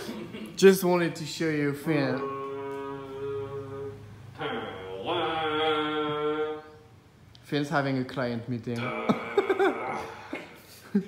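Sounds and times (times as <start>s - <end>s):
didgeridoo drone: 1.9s - 6.9s.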